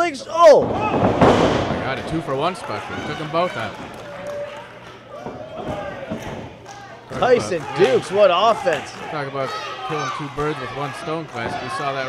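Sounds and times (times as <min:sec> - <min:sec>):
faint crowd voices: 0:00.6 - 0:12.0.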